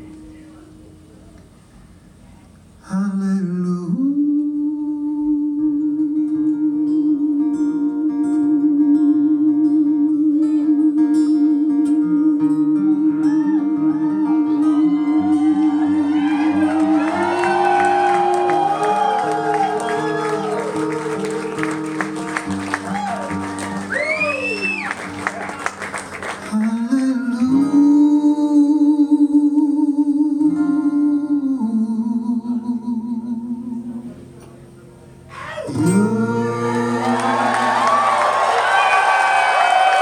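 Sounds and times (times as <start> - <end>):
man singing a long note: 2.8 - 21.8, 26.5 - 34.2, 35.4 - 38.2
strummed acoustic guitar: 5.6 - 23.9, 24.5 - 29.3, 33.8 - 38.2
audience cheering: 15.1 - 26.5, 36.6 - 40.0.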